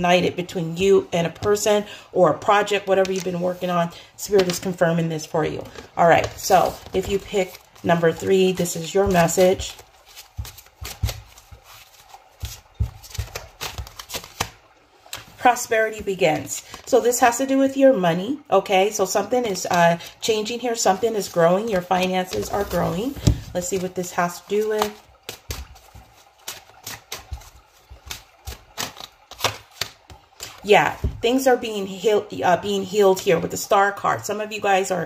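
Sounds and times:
cards being shuffled by hand: 6.2 - 15.3, 21.7 - 31.2.

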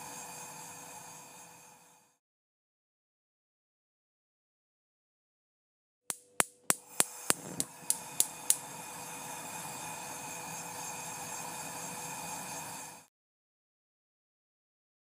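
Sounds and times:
steady tones over hiss: 6.1 - 12.8.

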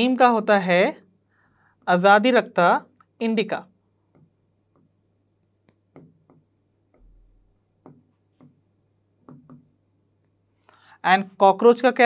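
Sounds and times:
marker scratching on board: 1.8 - 10.6.

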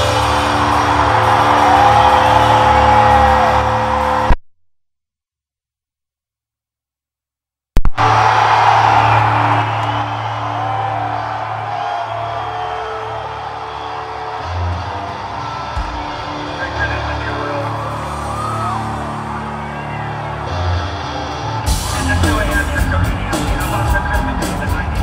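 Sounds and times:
crowd cheering and whistling: 0.0 - 4.3, 7.9 - 25.0.

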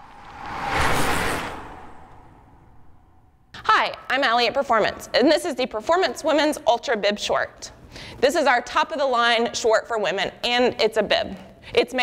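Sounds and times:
rushing whoosh: 0.0 - 3.5.

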